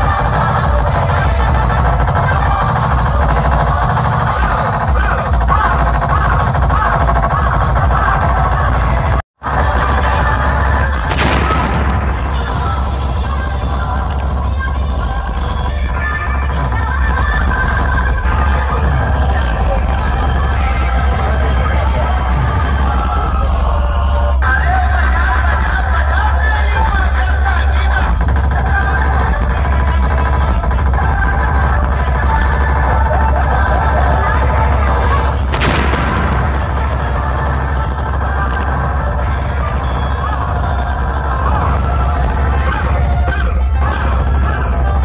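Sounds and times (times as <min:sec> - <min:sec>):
electronic dance music: 0:00.0 - 0:45.0.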